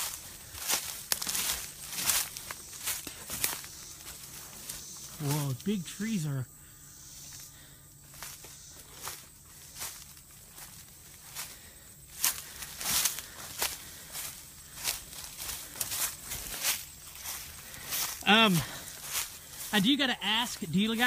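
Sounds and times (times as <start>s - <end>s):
footsteps crunching through dry leaves: 0.0s - 6.3s, 7.0s - 21.0s.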